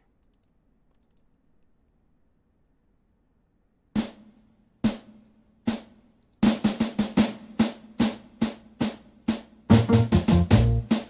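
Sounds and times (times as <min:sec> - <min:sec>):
drum hits: 0:04.0 - 0:11.0.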